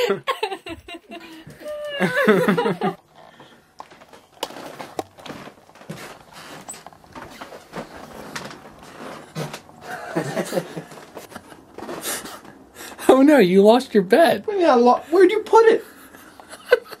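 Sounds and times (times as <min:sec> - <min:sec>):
footsteps: 0:03.1 - 0:13.1.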